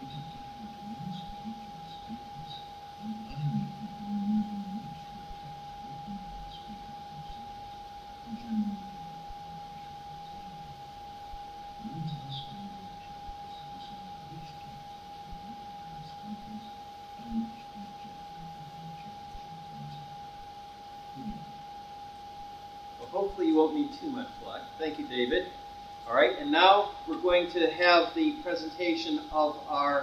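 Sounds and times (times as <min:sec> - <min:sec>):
faint murmuring voices: 0:00.0 - 0:22.4.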